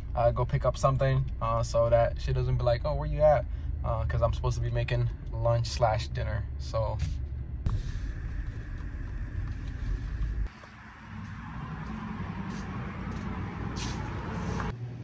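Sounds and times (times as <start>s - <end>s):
car driving rumble: 0.0s - 14.8s
outdoor traffic noise: 0.0s - 15.0s.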